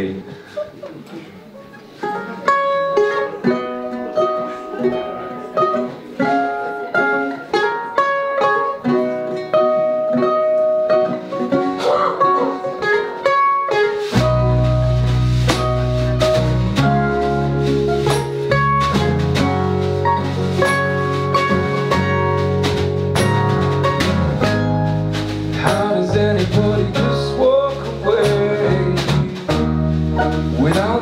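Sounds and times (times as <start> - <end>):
mandolin playing: 0.7 - 31.0
acoustic guitar picking: 1.5 - 31.0
bass guitar: 1.7 - 31.0.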